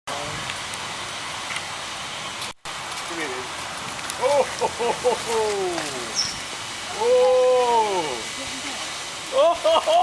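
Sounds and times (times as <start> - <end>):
steady background hiss: 0.1 - 10.0.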